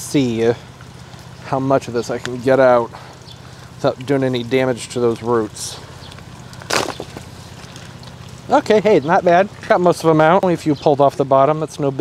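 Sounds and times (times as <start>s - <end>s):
low machine hum: 0.0s - 12.0s
rustling scrape of plant pot: 6.6s - 8.2s.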